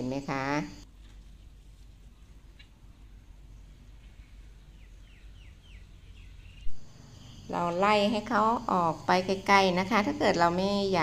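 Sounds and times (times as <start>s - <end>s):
bird chirping: 3.5s - 8.0s.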